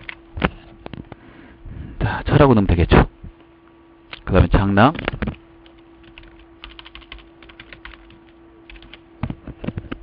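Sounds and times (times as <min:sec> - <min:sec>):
computer keyboard typing: 0:00.0 - 0:00.2, 0:04.9 - 0:09.0
steady low hum: 0:00.0 - 0:10.0.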